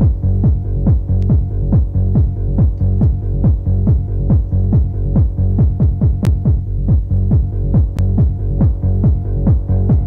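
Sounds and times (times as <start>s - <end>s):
electronic dance music: 0.0s - 10.0s
pounding kick drum: 0.0s - 10.0s.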